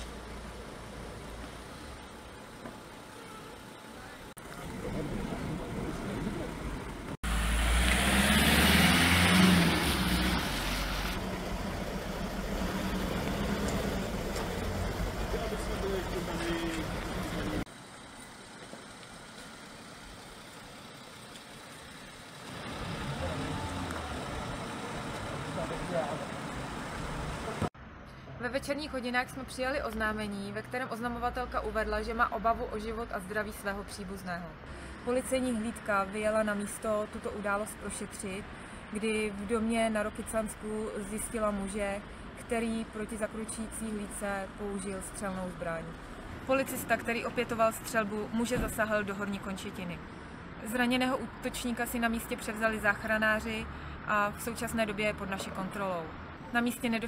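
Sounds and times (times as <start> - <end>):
street ambience: 0.0 - 57.0
vehicle engine running: 11.0 - 27.7.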